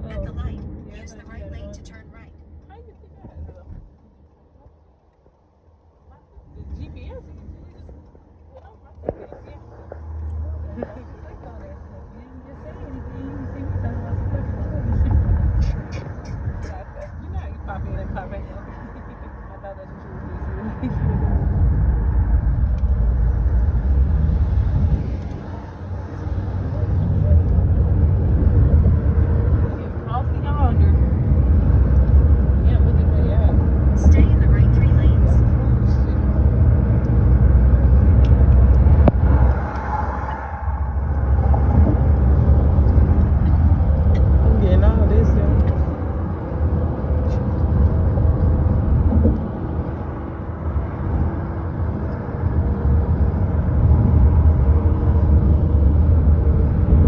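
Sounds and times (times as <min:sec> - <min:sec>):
road and wind noise inside car: 0:00.0 - 0:57.0.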